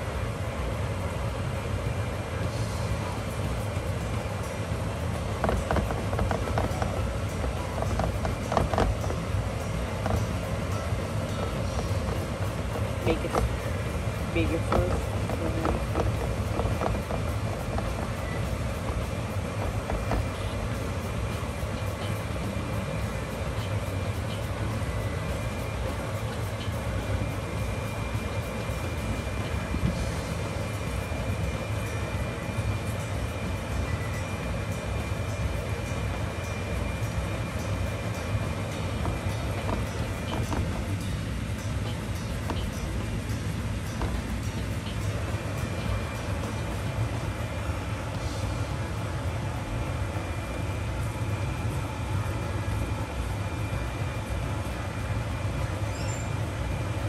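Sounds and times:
low hum and rumble: 0:00.0 - 0:57.0
thin steady whine: 0:00.0 - 0:57.0.

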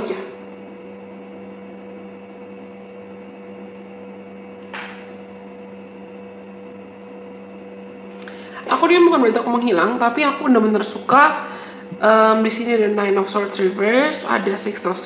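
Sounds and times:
two-tone steady hum: 0:00.0 - 0:15.0.

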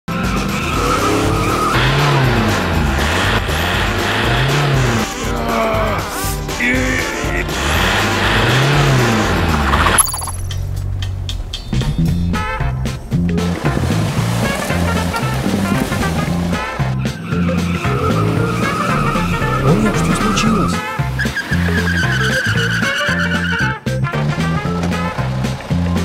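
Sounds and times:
wheels spinning in snow: 0:00.1 - 0:05.1, 0:07.4 - 0:10.5
engine revving: 0:00.1 - 0:26.0.

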